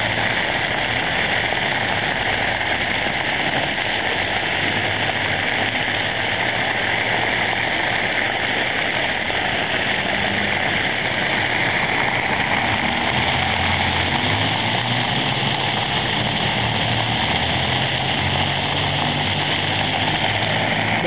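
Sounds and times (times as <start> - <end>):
fountain water splashing on pavers: 0.0 - 21.0.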